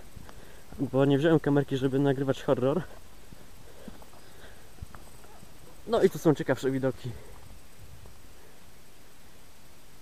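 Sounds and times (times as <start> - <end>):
footsteps on stony dirt track: 0.0 - 1.0, 2.4 - 6.3
man's voice: 5.9 - 7.3.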